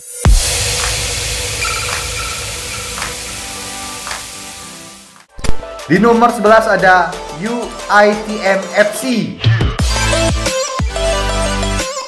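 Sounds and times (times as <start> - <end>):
hiss: 0.0 - 5.2.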